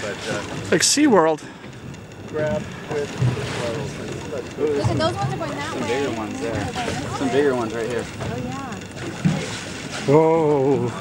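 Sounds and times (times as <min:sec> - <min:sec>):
water noise from boat: 0:00.0 - 0:11.0
wind: 0:00.0 - 0:11.0.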